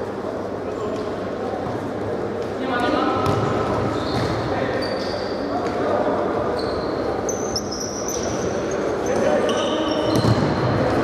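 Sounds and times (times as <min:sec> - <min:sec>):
shoes squeaking on court floor: 0:02.8 - 0:11.0.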